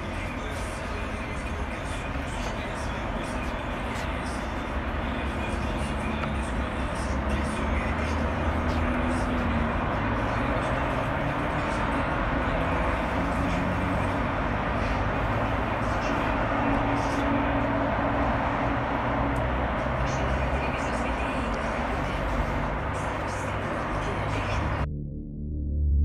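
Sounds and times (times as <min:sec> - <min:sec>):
outdoor rumble with hiss: 0:00.0 - 0:24.8.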